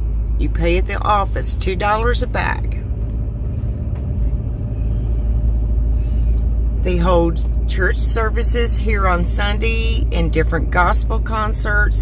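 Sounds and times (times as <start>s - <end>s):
vehicle driving on paved road: 0.0s - 12.0s.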